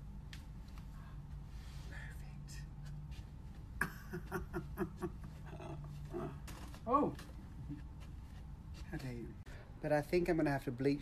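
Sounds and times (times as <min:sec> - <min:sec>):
low steady hum: 0:00.0 - 0:11.0
quiet vocal sounds: 0:05.4 - 0:06.6.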